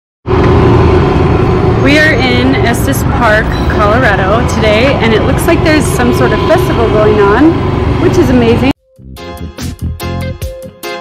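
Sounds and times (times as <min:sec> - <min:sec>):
woman speaking: 0:01.8 - 0:08.8.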